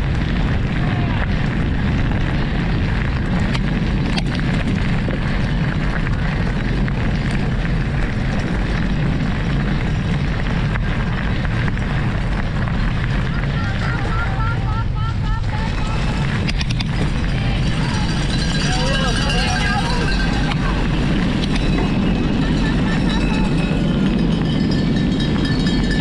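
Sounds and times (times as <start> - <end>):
bike tyres rumbling on gravel: 0.0 - 26.0
wind buffeting microphone: 0.0 - 26.0.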